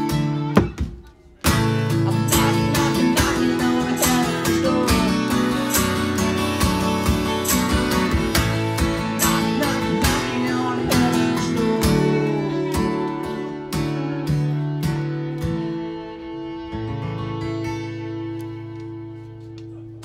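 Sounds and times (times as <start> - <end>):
strummed acoustic guitar: 0.0 - 19.9
harmonica: 1.5 - 19.4.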